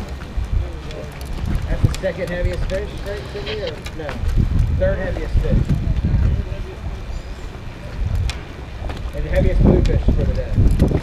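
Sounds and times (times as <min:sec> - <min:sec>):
indistinct talking: 0:00.0 - 0:10.6
wind rumble on microphone: 0:00.0 - 0:11.0.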